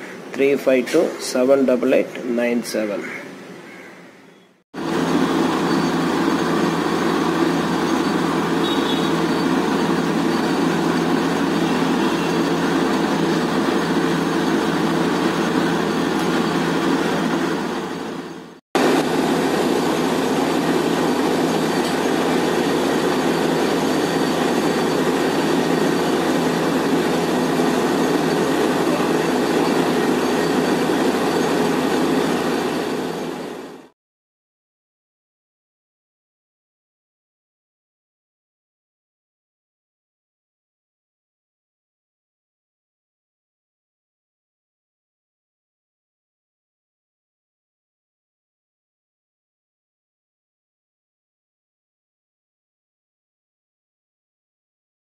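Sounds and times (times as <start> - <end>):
drilling rig running: 4.8 - 33.9.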